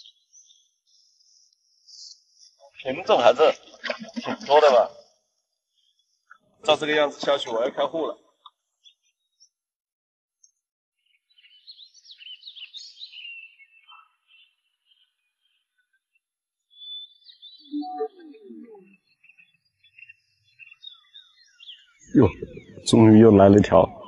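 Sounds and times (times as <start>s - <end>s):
small birds chirping: 0.0s - 9.6s, 10.4s - 24.0s.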